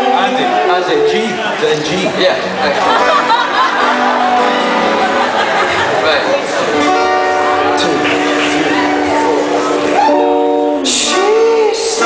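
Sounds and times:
acoustic guitar strumming: 0.0 - 12.0
live rock band: 0.0 - 12.0
voices: 0.0 - 12.0.

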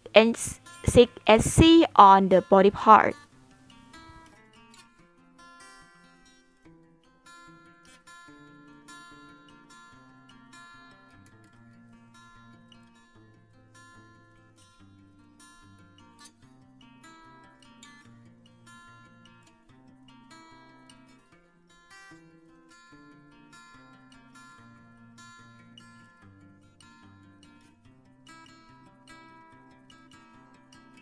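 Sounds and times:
plucked acoustic guitar music: 0.0 - 31.0.

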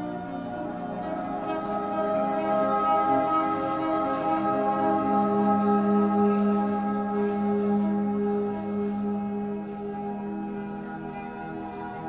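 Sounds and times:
bowed cello drone: 0.0 - 12.0.

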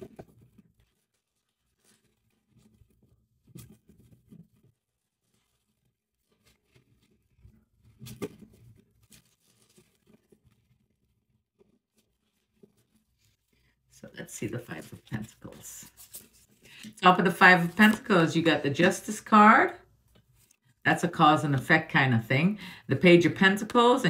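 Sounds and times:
cards being shuffled: 14.4 - 16.8, 17.5 - 18.1.

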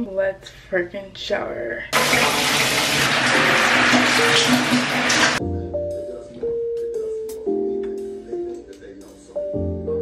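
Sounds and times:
shower spray running: 2.0 - 5.4.

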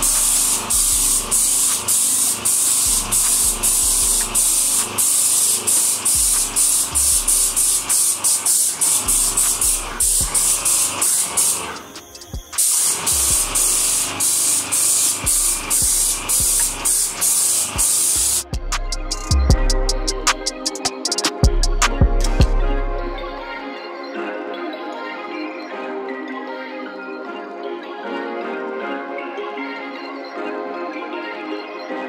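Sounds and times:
paint spray gun hissing: 0.0 - 18.5.

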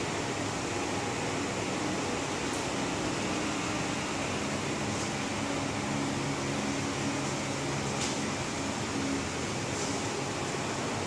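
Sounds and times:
air conditioning hiss and hum: 0.0 - 11.0.

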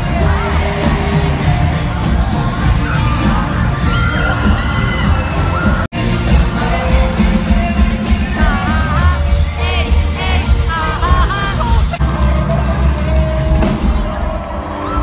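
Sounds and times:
fans singing and screaming: 0.0 - 15.0
live pop-rock band: 0.0 - 15.0.

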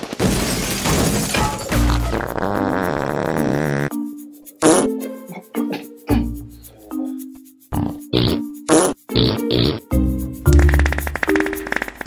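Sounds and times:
background music: 1.1 - 12.0
man coughing and gasping: 4.6 - 6.4.

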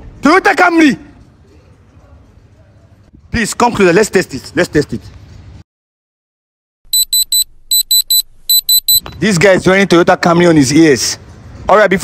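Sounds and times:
high-pitched tester beeps: 6.9 - 9.0.

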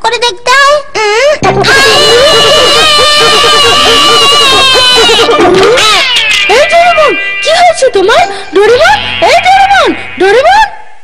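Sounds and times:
cartoon voice crying: 1.0 - 10.5.

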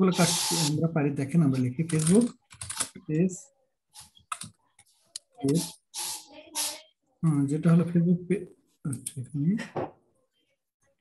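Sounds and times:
computer keyboard typing: 1.9 - 2.9.

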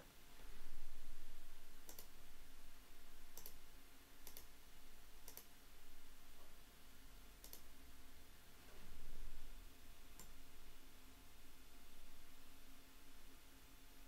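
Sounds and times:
low electrical hum: 0.0 - 14.0
computer mouse clicks: 1.8 - 2.2, 3.3 - 3.6, 4.2 - 4.5, 5.2 - 5.5, 7.4 - 7.7, 10.2 - 10.4.

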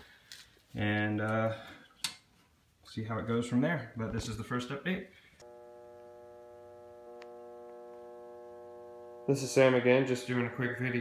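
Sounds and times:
sustained electronic tone chord: 5.4 - 11.0.

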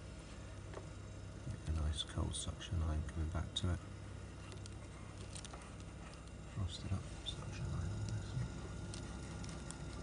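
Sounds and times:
fridge compressor humming: 0.0 - 10.0.

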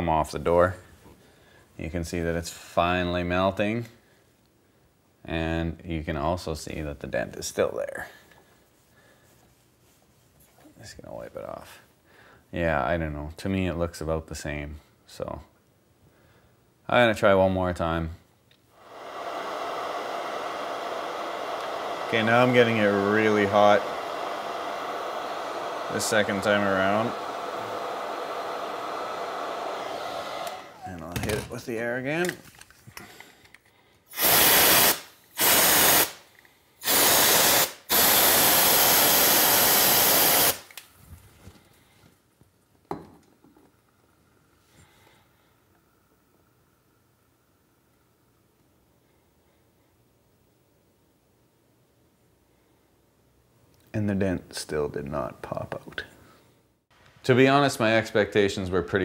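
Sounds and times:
compressed air hissing bursts: 18.8 - 30.8, 34.1 - 40.7
hair dryer running: 18.8 - 30.8, 36.8 - 40.7.

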